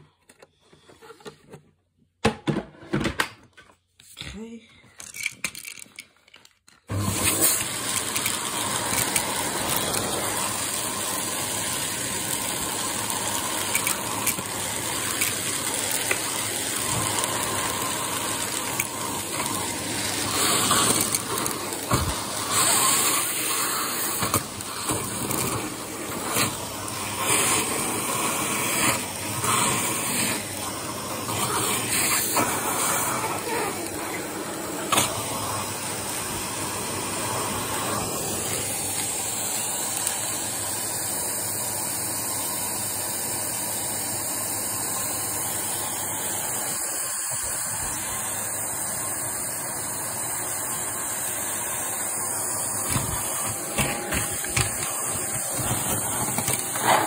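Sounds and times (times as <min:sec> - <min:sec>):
vacuum cleaner suction: 0:06.9 - 0:57.0.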